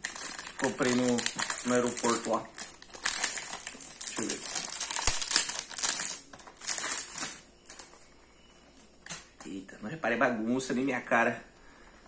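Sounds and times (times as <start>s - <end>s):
plastic wrapping crinkling: 0.0s - 8.0s.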